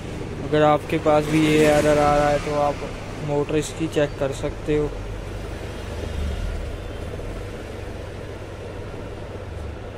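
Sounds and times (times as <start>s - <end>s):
fan motor humming: 0.0s - 9.9s.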